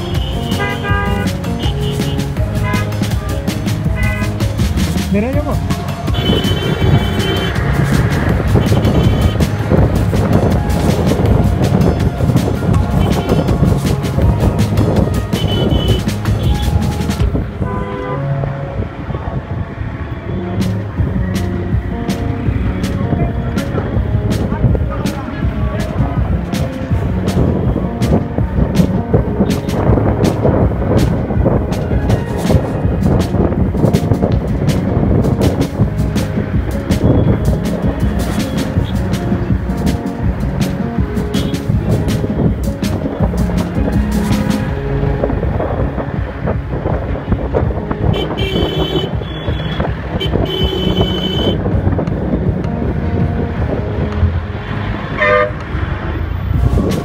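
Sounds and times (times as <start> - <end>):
vehicle horns honking: 0.0 - 3.1, 3.9 - 4.4, 6.1 - 7.8, 8.5 - 9.6, 12.9 - 13.6, 15.2 - 16.8, 17.5 - 18.5, 41.4 - 41.7, 48.1 - 51.6, 55.1 - 55.8
motorcycle engine and road noise: 0.0 - 57.0.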